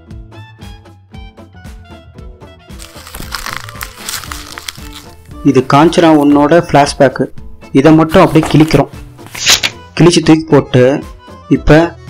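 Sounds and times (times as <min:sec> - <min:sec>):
music: 0:00.0 - 0:12.0
paper sheets rustling: 0:02.8 - 0:06.4, 0:08.1 - 0:09.8
person talking: 0:05.3 - 0:10.8.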